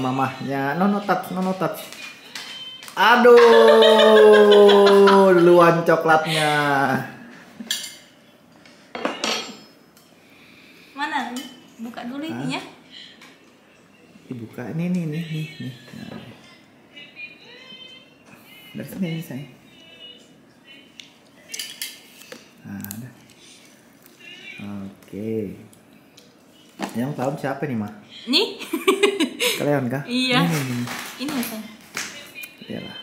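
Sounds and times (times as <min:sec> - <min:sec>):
knife clinking on ceramic plate: 0:09.0 - 0:09.8.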